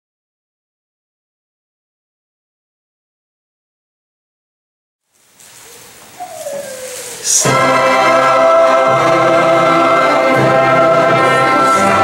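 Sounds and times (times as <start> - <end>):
faint rustling: 5.1 - 7.5.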